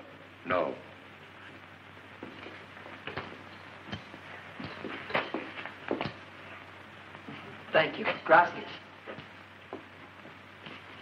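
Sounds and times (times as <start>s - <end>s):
film soundtrack hiss: 0.0s - 11.0s
footsteps on wooden floor: 9.0s - 11.0s.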